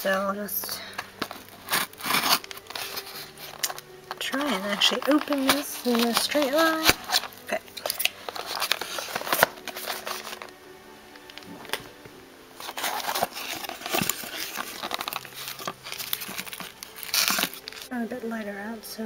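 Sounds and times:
cardboard and paper rustling: 0:00.0 - 0:10.6, 0:12.6 - 0:18.0
soft background music: 0:00.0 - 0:19.0.

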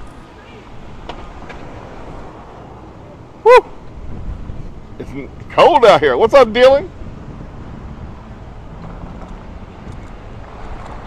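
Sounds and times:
street traffic noise: 0:00.0 - 0:11.0
person shouting woo: 0:03.4 - 0:03.8.

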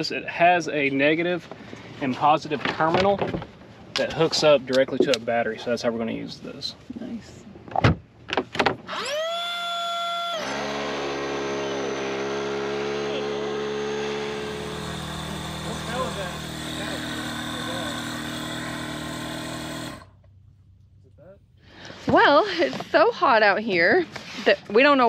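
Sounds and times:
electric inflation pump motor: 0:10.0 - 0:20.2.

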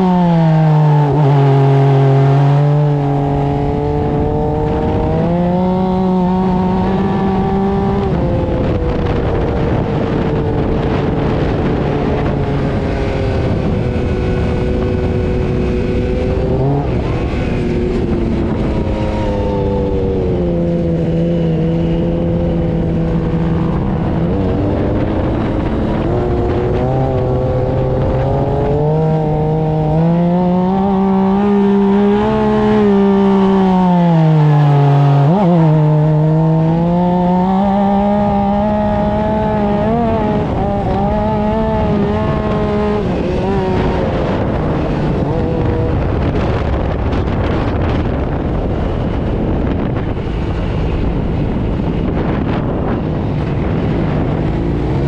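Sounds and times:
dune buggy engine revving: 0:00.0 - 0:55.0.

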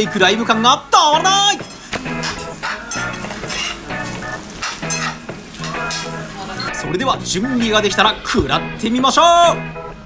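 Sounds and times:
rice sizzling on a hot skillet: 0:01.3 - 0:06.8
metal spoons scraping iron: 0:01.6 - 0:06.8.

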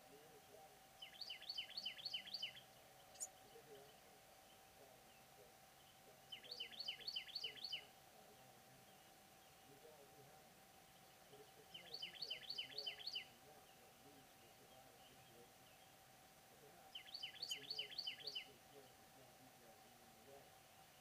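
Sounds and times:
small songbird singing: 0:00.0 - 0:21.0.

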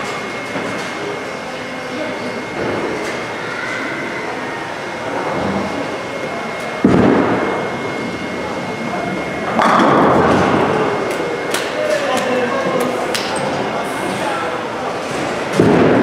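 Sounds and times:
bowling alley din: 0:02.3 - 0:16.0.

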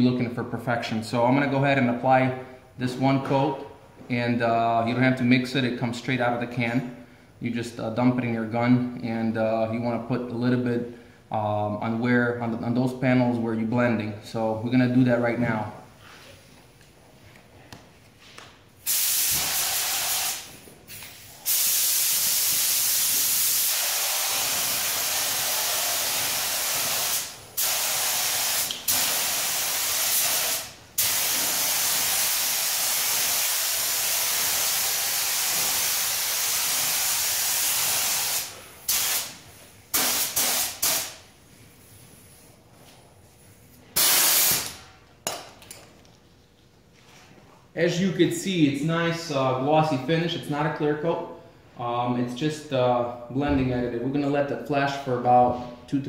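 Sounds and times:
spray gun hissing: 0:18.8 - 0:41.2, 0:44.0 - 0:44.8.

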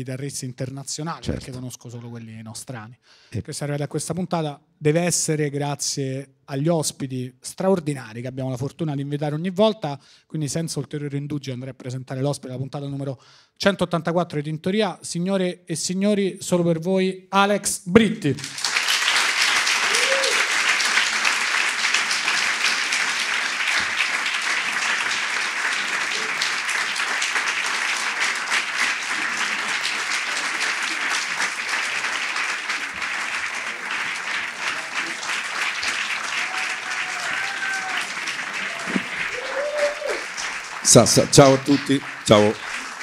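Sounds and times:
audience applauding: 0:18.3 - 0:43.0.

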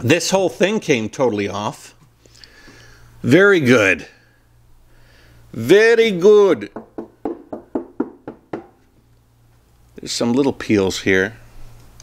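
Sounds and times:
hand knocking on van panel: 0:06.8 - 0:08.8.

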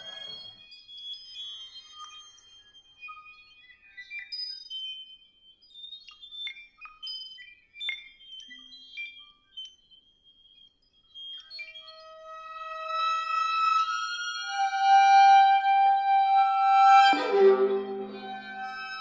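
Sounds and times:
violin high held tones: 0:12.0 - 0:19.0
fuller sustained sound: 0:13.2 - 0:19.0.

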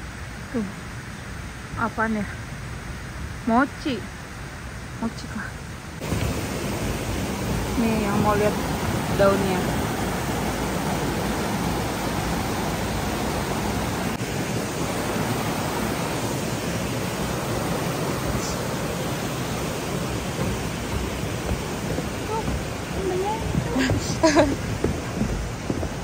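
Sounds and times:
water rushing over rocks: 0:05.9 - 0:26.0.

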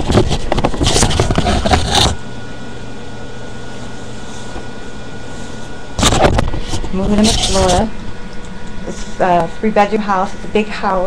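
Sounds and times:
low droning hum with whine: 0:00.0 - 0:11.0.

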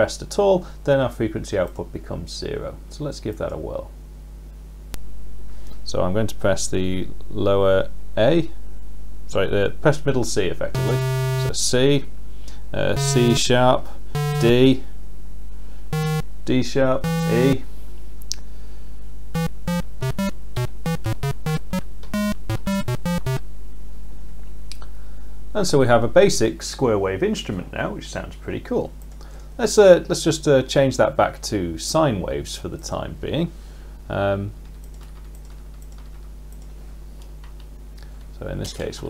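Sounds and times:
square-wave synth notes: 0:10.8 - 0:11.6, 0:13.0 - 0:13.4, 0:14.2 - 0:14.7, 0:15.9 - 0:16.2, 0:17.0 - 0:17.6, 0:19.4 - 0:23.4
keyboard typing clicks: 0:19.4 - 0:23.4.

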